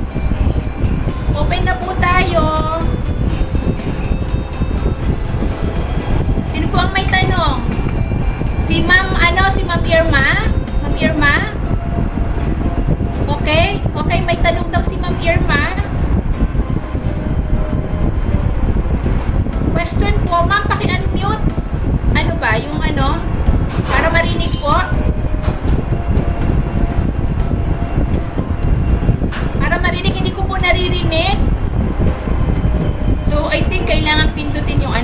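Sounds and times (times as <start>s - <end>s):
low rumbling background noise: 0.0s - 35.0s.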